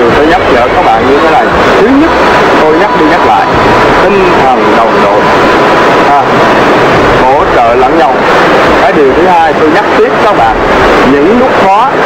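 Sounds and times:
man talking: 0:00.0 - 0:05.3, 0:06.0 - 0:06.4, 0:07.2 - 0:08.2, 0:08.8 - 0:12.0
thin high tone: 0:00.0 - 0:08.1
waterfall rushing: 0:00.0 - 0:12.0.

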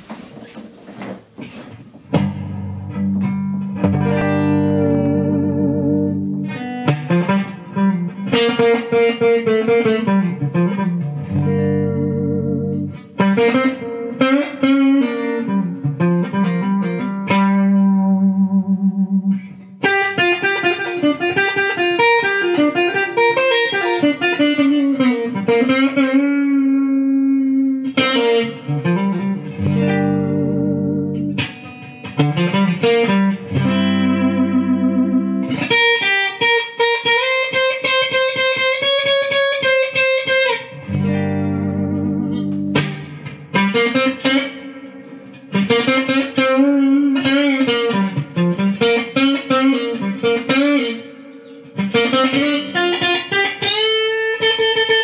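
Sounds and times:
clean electric guitar improvising: 0:00.0 - 0:55.0.

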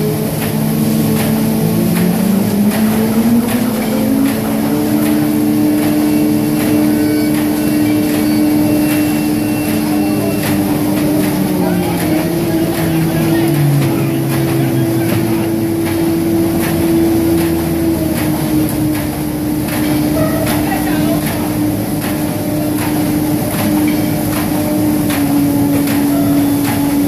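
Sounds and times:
machine drone: 0:00.0 - 0:27.0.

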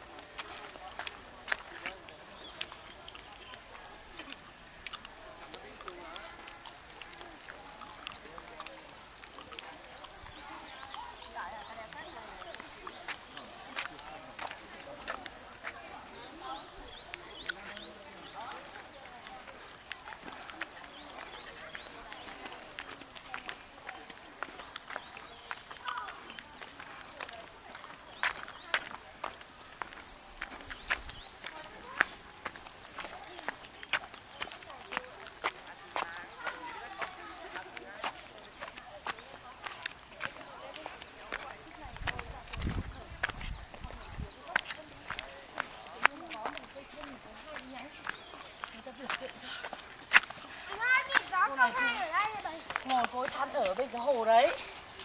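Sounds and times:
faint indistinct voices: 0:00.0 - 0:55.0
footsteps on stone path: 0:00.0 - 0:55.0
people talking: 0:00.0 - 0:55.0
small birds chirping: 0:00.1 - 0:55.0.

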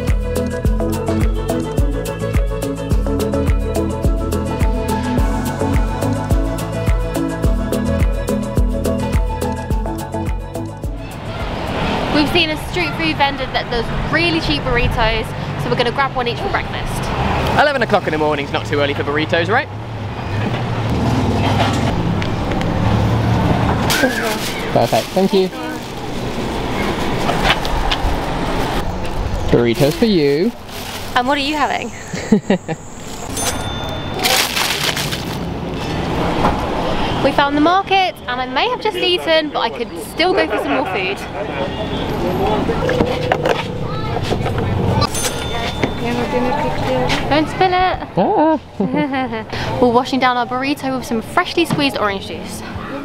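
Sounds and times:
road traffic rumble: 0:00.0 - 0:53.0
people's voices: 0:09.5 - 0:19.7, 0:37.1 - 0:53.0.

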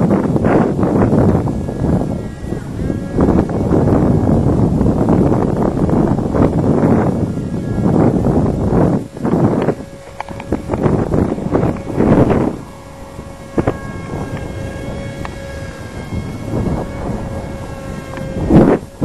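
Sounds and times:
faint steady hum: 0:00.0 - 0:19.0
wind buffeting microphone: 0:00.0 - 0:19.0.

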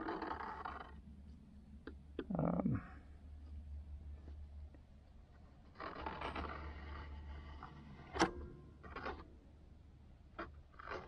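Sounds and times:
palette knife scraping paint: 0:05.7 - 0:08.1.

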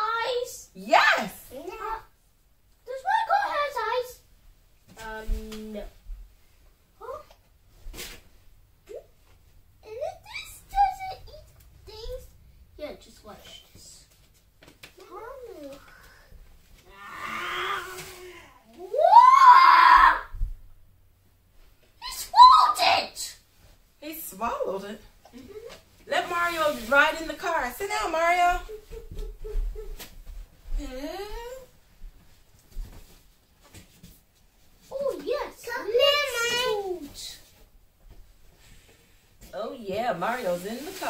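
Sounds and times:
child groaning: 0:16.9 - 0:20.2
child squealing: 0:16.9 - 0:20.4.

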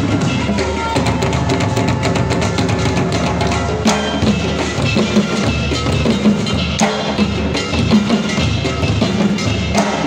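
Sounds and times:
live band drumming: 0:00.0 - 0:10.0.

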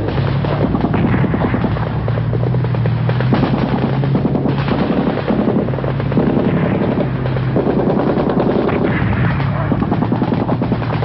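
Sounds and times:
rapid automatic gunfire: 0:00.0 - 0:11.0.

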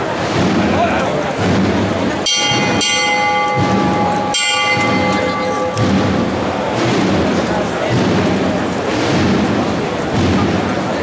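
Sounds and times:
crowd murmur: 0:00.0 - 0:11.0
metal bell ringing: 0:02.2 - 0:06.7.

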